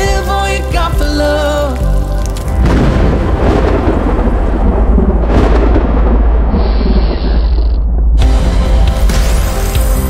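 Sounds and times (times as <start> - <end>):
rolling thunder: 2.6 - 8.3.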